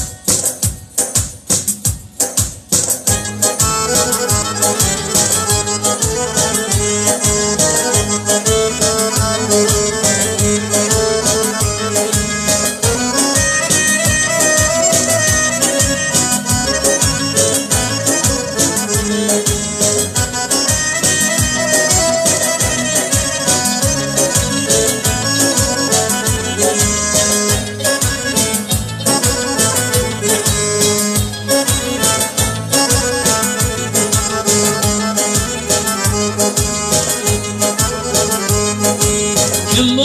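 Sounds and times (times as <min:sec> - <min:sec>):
folk music on lute and keyboard: 0:02.8 - 0:40.0.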